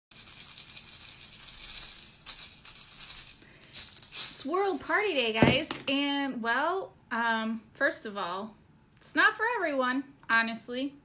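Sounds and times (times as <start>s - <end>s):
maraca shaking: 0.1s - 5.9s.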